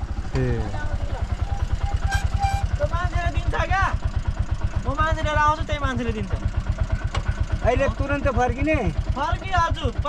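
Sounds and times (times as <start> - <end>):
rickshaw engine idling: 0.0 - 10.0.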